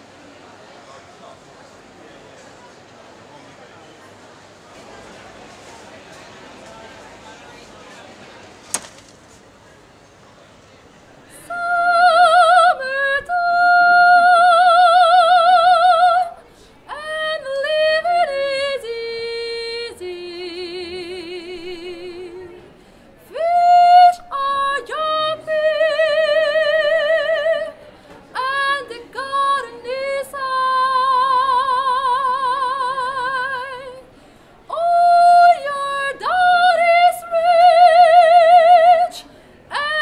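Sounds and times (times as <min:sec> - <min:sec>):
soprano singing operatically: 0:11.4 - 0:22.6, 0:23.2 - 0:34.0, 0:34.7 - 0:40.0.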